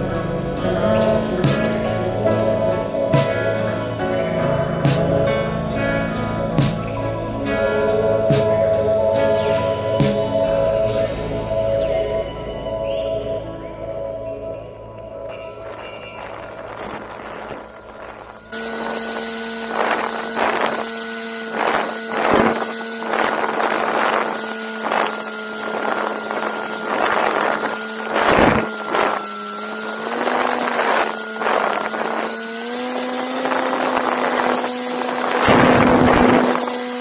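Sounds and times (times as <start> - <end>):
electric motor and propeller whine: 0.0 - 37.0
wind buffeting microphone: 0.0 - 37.0.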